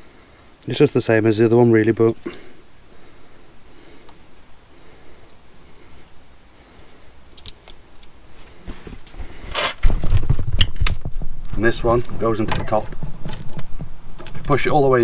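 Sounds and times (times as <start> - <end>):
rustling and clicks of small parts: 7.3 - 14.7
low rumbling handling noise: 8.6 - 15.0.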